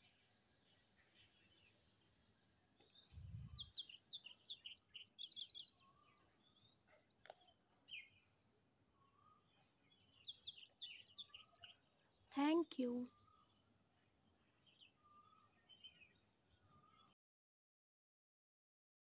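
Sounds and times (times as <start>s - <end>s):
bird chirping: 0.0s - 17.2s
click: 7.2s - 7.4s.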